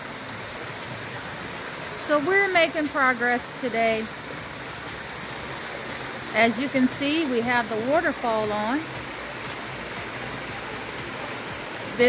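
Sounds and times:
waterfall splashing into pool: 0.0 - 12.0.

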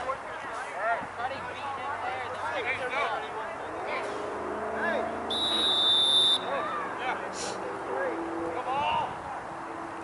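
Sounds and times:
sports whistle blown: 5.3 - 6.5
people shouting: 5.3 - 7.1.

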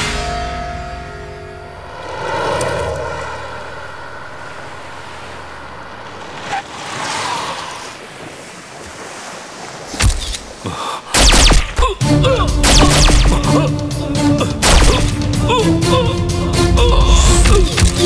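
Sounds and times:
sea waves surging: 1.7 - 11.8.

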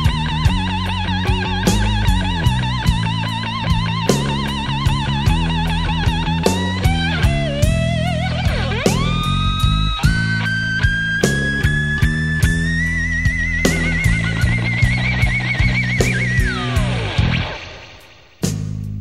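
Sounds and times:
electric slide guitar solo: 0.0 - 18.1
bass guitar: 0.0 - 19.0
steady drum beat: 0.0 - 19.0.

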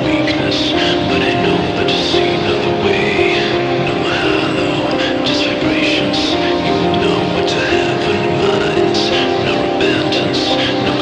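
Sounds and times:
high sliding lead line: 0.0 - 11.0
sustained chords: 0.0 - 11.0.

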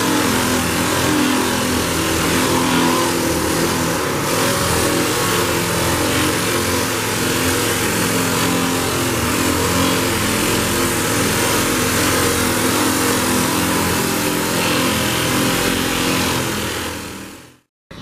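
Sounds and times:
air sander on metal: 0.0 - 18.0.

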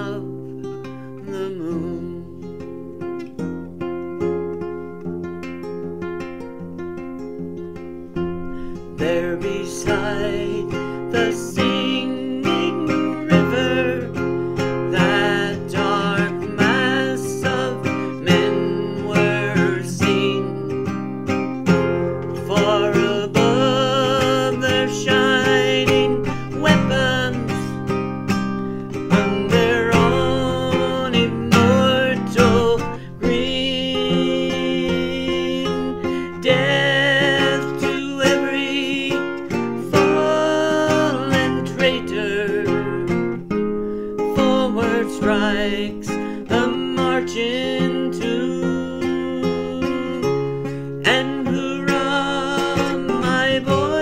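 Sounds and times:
acoustic guitar folk ballad: 0.0 - 54.0.

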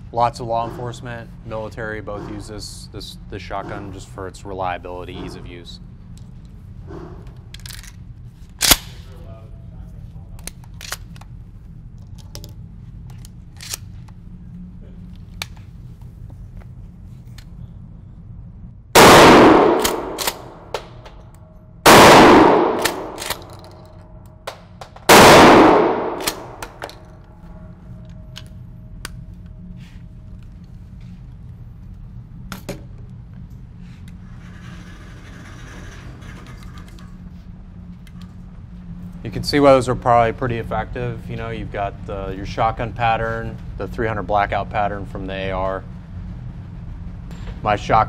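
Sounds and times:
shotgun blasts: 19.0 - 20.9, 21.9 - 23.6, 25.1 - 26.8
shotgun pump clicks: 19.7 - 20.5, 22.6 - 23.7.

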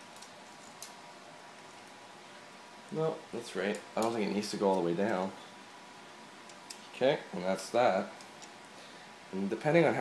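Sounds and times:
quiet room hiss: 0.0 - 10.0.

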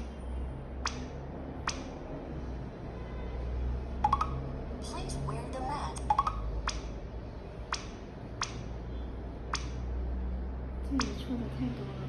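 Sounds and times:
rising electronic chirp: 4.0 - 4.4
sharp touchscreen clicks: 4.0 - 4.4, 6.0 - 6.9.

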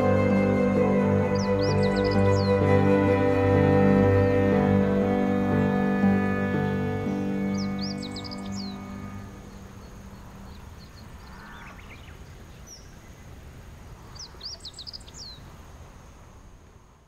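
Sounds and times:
background music: 0.0 - 10.0
faint steady hiss: 0.0 - 17.0
high bird chirps: 1.1 - 2.7, 6.7 - 13.0.

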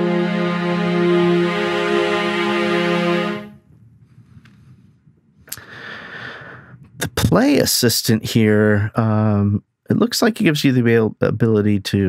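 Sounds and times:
string ensemble sustained chord: 0.0 - 3.6.

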